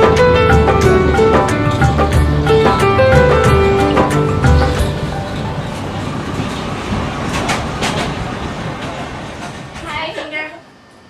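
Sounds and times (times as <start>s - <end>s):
sharp track clacks: 0.0s - 9.9s
train carriage rumble: 0.0s - 11.0s.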